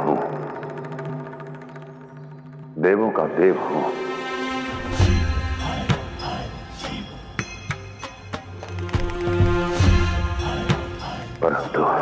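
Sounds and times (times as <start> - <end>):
man speaking: 2.8 - 4.1.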